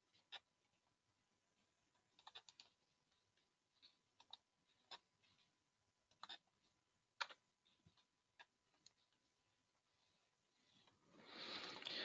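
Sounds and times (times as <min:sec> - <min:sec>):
computer mouse clicks: 0:02.1 - 0:02.8.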